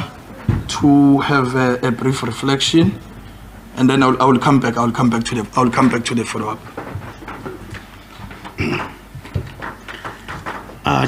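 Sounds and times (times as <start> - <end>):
shuffling and handling sounds: 5.0 - 11.0.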